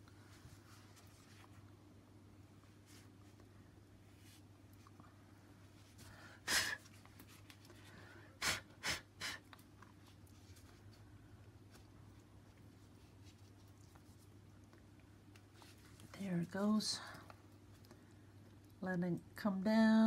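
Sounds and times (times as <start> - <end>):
low room hum: 0.0 - 20.0
sharp nasal breath puffs: 8.3 - 9.5.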